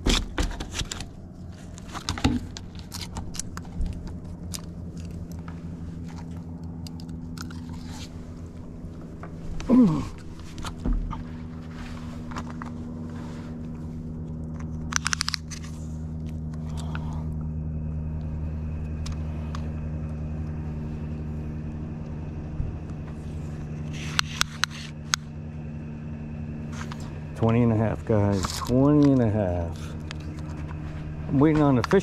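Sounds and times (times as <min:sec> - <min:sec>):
low engine hum: 0:00.0 - 0:32.0.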